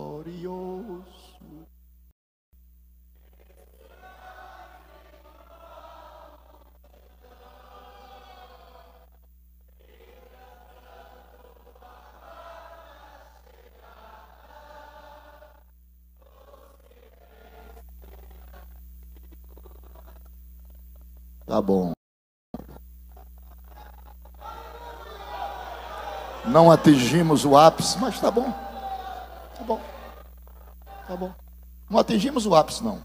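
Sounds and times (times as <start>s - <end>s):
congregation chanting: 0.0s - 1.7s, 3.2s - 18.7s, 23.4s - 33.0s
steady low hum: 0.0s - 22.0s, 22.6s - 33.0s.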